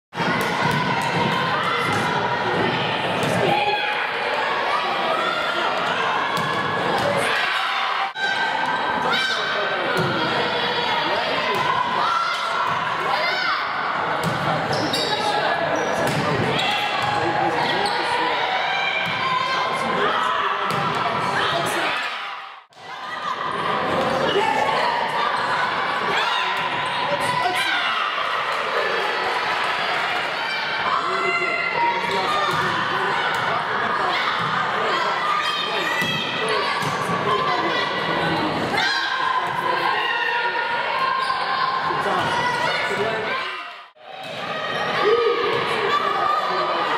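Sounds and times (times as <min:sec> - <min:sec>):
voices echoing in a gym: 0:00.1 - 0:46.9
volleyball being hit and bouncing: 0:16.0 - 0:16.6.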